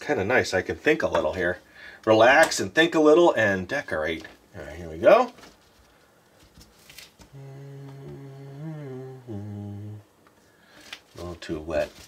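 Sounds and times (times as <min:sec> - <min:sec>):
man humming: 0:07.3 - 0:10.2.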